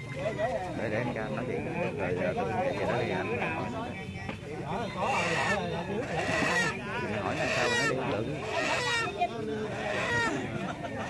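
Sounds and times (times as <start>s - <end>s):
other voices: 0.0s - 11.0s.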